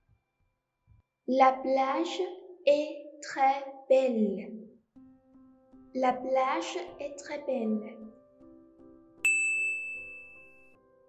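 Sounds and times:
soft background music: 0:01.3 - 0:11.0
bright ding chime: 0:09.2 - 0:10.7.

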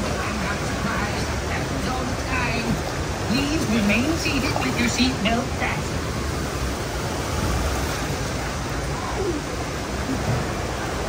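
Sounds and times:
whitewater rushing over rocks: 0:00.0 - 0:11.0.

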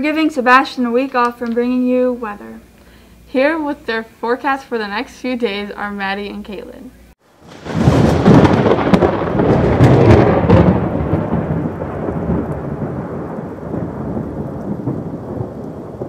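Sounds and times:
rain: 0:07.2 - 0:16.0
crackling thunder: 0:07.4 - 0:16.0.

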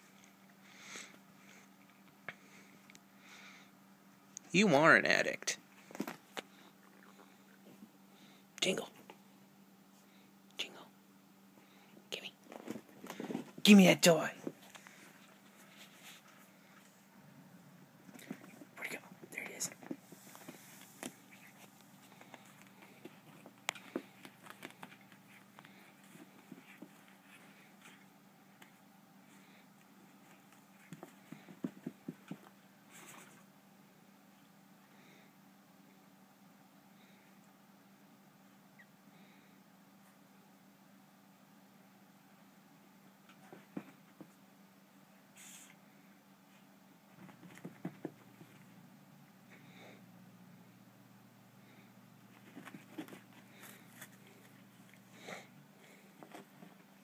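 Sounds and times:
low steady hum: 0:00.0 - 0:57.0
cat claws scratching carpet: 0:18.1 - 0:33.5, 0:47.1 - 0:48.8, 0:52.3 - 0:55.2
cat pawing toy on carpet: 0:47.2 - 0:48.7.

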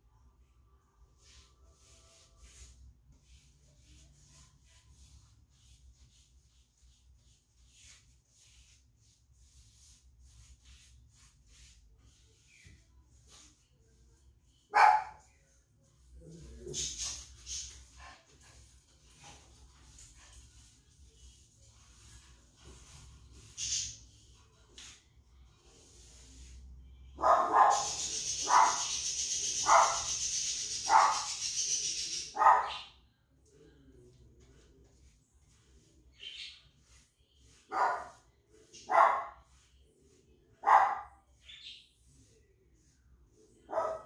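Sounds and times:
dog barking: 0:14.7 - 0:15.2, 0:27.2 - 0:29.0, 0:29.6 - 0:30.1, 0:30.8 - 0:31.4, 0:32.3 - 0:32.9, 0:37.7 - 0:38.2, 0:38.8 - 0:39.4, 0:40.6 - 0:41.2, 0:43.7 - 0:44.0.

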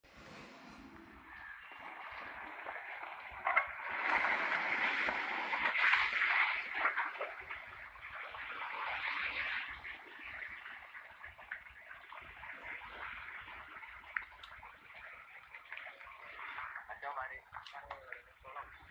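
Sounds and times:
floodwater churning: 0:00.0 - 0:18.9
loud splashing water: 0:01.4 - 0:18.9.

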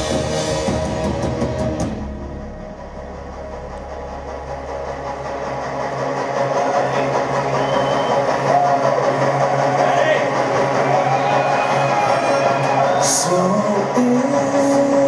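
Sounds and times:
crowd noise with shouts: 0:05.1 - 0:15.0.

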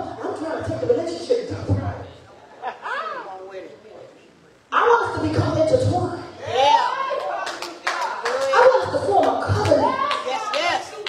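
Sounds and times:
hand clapping: 0:07.2 - 0:11.0.

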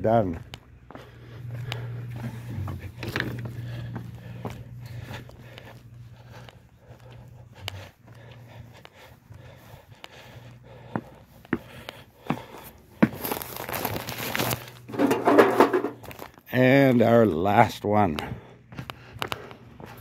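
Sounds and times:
footsteps on concrete: 0:00.0 - 0:16.4, 0:17.9 - 0:20.0
paper flyers crinkling: 0:13.2 - 0:15.4.

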